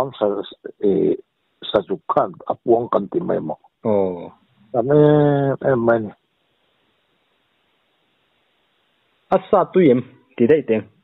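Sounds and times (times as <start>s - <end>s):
man talking: 0.0s - 6.2s, 9.3s - 11.0s.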